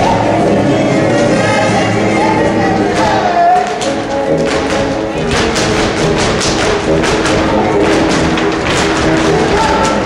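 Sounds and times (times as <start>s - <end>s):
folk dance music: 0.0s - 10.0s
dancers' shoes tapping floor: 2.7s - 10.0s.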